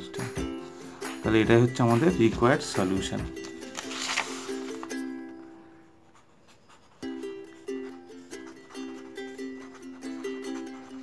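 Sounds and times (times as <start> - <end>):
marker pen scratching on paper: 6.0 - 7.2, 7.8 - 11.0
plucked string instrument music: 7.0 - 11.0.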